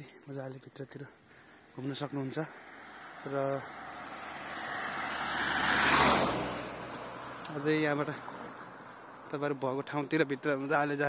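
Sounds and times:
car driving past: 0:02.4 - 0:09.4.

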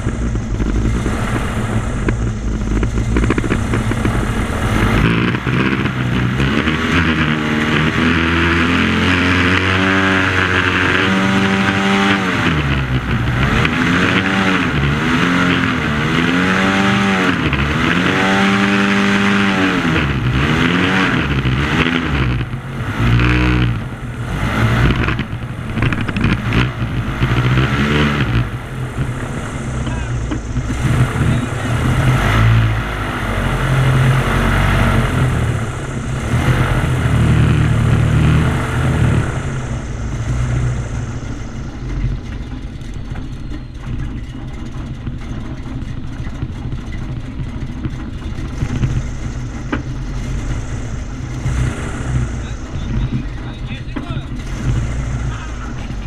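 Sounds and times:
airboat engine and propeller revving: 0:00.0 - 0:56.0.

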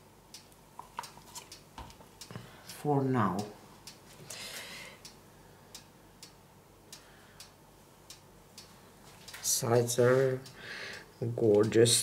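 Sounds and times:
faint regular ticking: 0:00.0 - 0:12.0.

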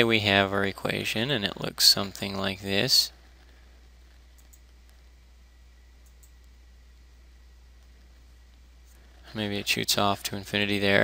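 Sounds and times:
faint high whine: 0:00.0 - 0:11.0
steady low hum: 0:00.0 - 0:11.0.

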